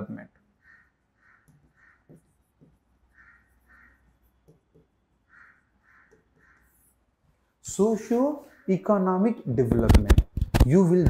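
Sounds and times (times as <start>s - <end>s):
faint caw-like bird calls: 0.5s - 7.1s, 8.0s - 9.2s
marker strokes on whiteboard: 0.6s - 8.7s.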